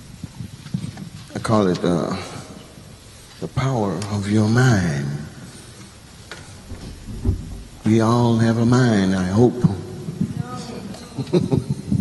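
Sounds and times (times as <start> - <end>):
low even hiss: 0.0 - 12.0.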